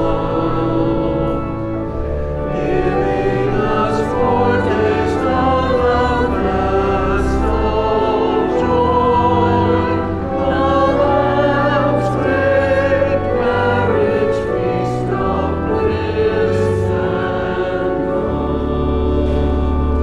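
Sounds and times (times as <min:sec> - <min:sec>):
church choir singing: 0:00.0 - 0:20.0
sustained low bass notes: 0:00.0 - 0:20.0.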